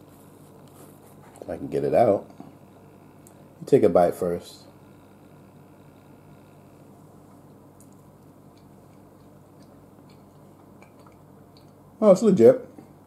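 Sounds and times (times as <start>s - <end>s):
low room hum: 0.0s - 13.0s
faint chewing: 7.3s - 11.8s.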